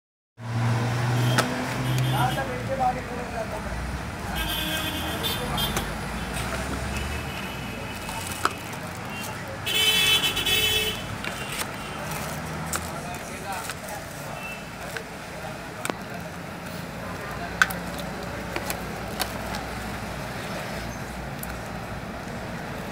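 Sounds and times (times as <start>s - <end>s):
handling phone and plastic wrapping: 7.9s - 9.4s, 11.2s - 15.1s
faint voices: 11.1s - 20.8s.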